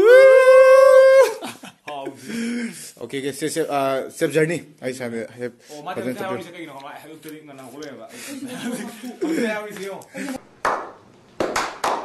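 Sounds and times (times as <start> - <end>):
high howl-like vocal call: 0.0 - 1.4.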